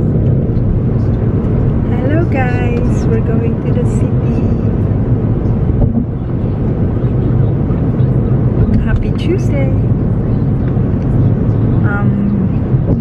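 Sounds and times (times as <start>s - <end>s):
car cabin road rumble: 0.0s - 13.0s.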